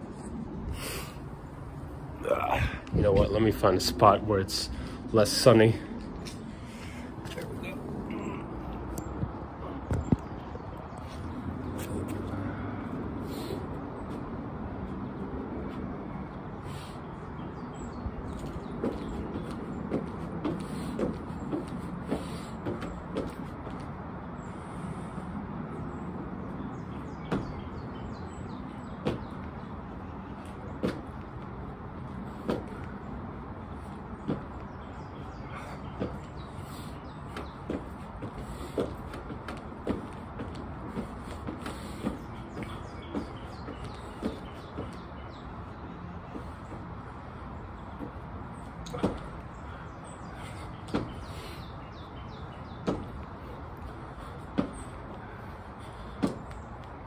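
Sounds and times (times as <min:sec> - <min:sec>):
sneakers thudding on wooden deck: 0:18.3 - 0:23.9, 0:26.8 - 0:29.7, 0:30.7 - 0:31.6, 0:32.3 - 0:32.9, 0:33.8 - 0:57.0.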